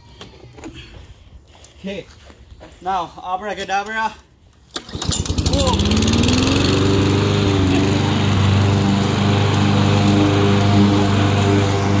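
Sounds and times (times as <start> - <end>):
lawn mower engine running: 4.7 - 12.0.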